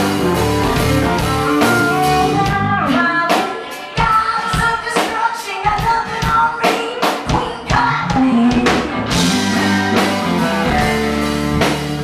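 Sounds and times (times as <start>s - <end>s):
live rock band playing: 0.0s - 12.0s
woman singing: 1.6s - 9.7s.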